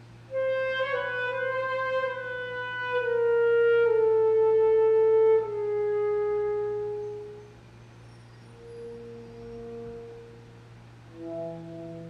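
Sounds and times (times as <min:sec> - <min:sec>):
alto saxophone long note: 0:00.3 - 0:07.6, 0:08.5 - 0:12.0.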